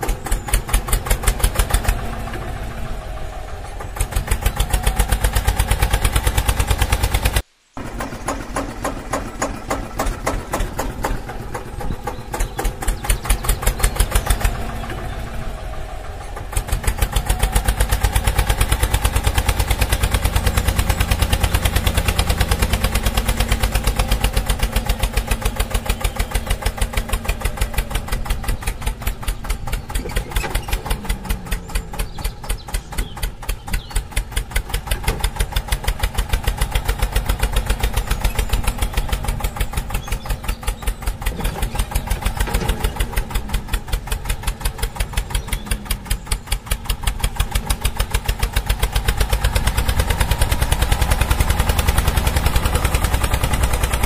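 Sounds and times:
tractor diesel engine chugging: 0:00.0 - 0:54.0.

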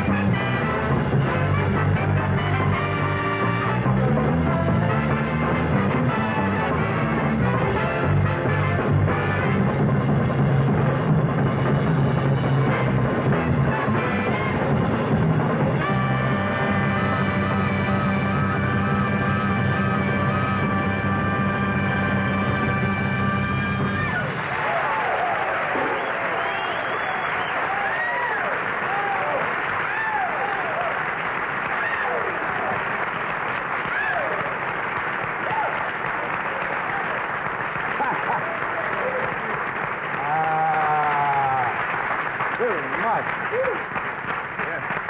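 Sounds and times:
band chord over drum rolls: 0:00.0 - 0:24.4
drum kits playing: 0:00.0 - 0:27.8
audience applauding and cheering: 0:00.0 - 0:45.0
whistles from audience: 0:25.7 - 0:28.4.

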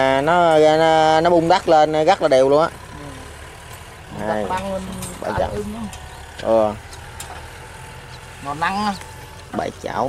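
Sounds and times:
tractor diesel engine rumbling: 0:00.0 - 0:10.0.

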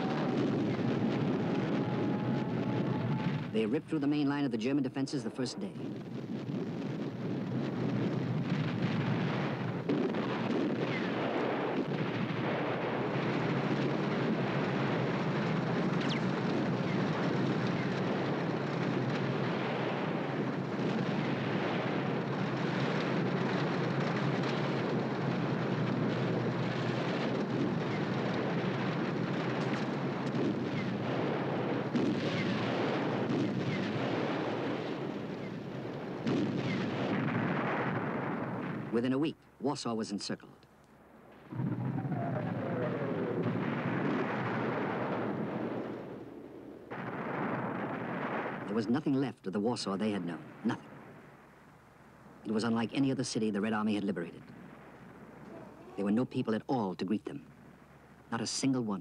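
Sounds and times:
artillery fire: 0:00.0 - 0:03.6, 0:05.8 - 0:39.0, 0:41.2 - 0:49.1, 0:54.1 - 0:56.0
explosions: 0:00.0 - 0:03.8, 0:05.4 - 0:39.1, 0:41.2 - 0:51.6, 0:52.4 - 0:56.4
gunfire: 0:08.6 - 0:38.9.

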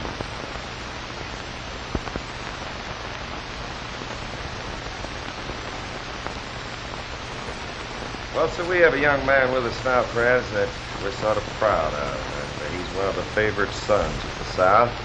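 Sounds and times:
film soundtrack hiss: 0:00.0 - 0:15.0.

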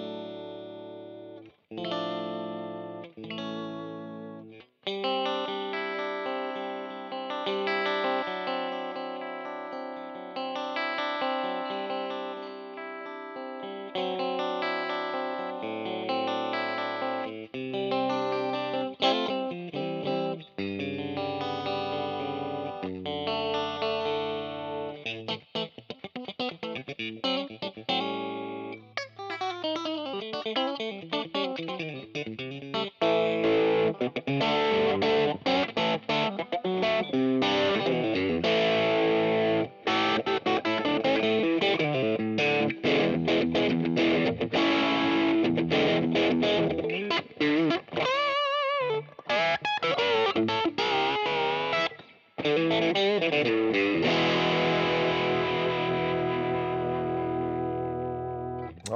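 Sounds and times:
electric guitar through amp: 0:00.0 - 0:58.9.

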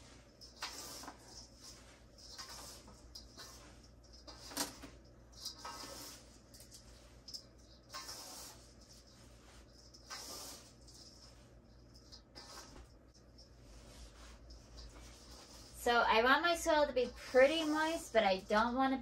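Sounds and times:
hands rustling soil in metal bowl: 0:05.4 - 0:18.8.

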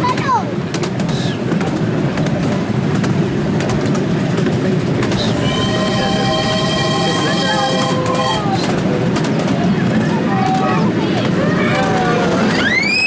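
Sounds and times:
miniature steam train rumbling: 0:00.0 - 0:13.0
wheels and carriages rattling: 0:00.0 - 0:13.0
high multi-note tone: 0:05.3 - 0:08.6.

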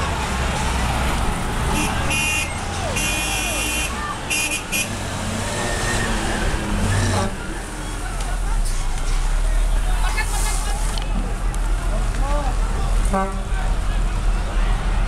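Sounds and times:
fire truck engines rumbling: 0:00.0 - 0:15.0
voices: 0:00.0 - 0:15.0
high-pitched horn blasts: 0:01.8 - 0:05.0.

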